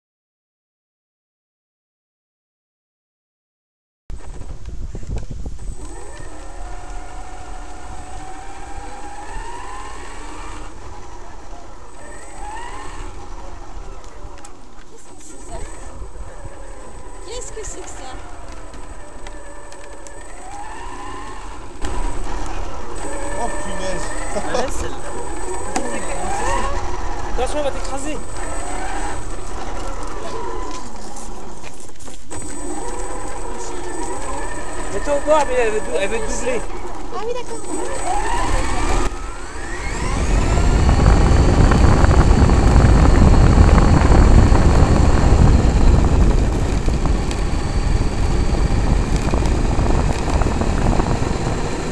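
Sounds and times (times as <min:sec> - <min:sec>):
tyres rolling on boardwalk: 0:04.2 - 0:51.9
electric motor whine: 0:05.1 - 0:51.9.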